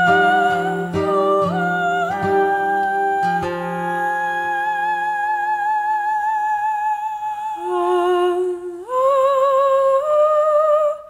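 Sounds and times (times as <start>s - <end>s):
wordless folk singing: 0.0s - 11.0s.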